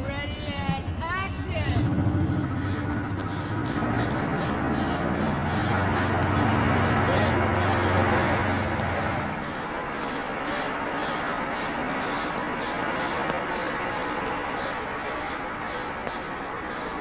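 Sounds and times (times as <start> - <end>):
indistinct voices: 0.0 - 17.0
low steady hum: 0.0 - 17.0.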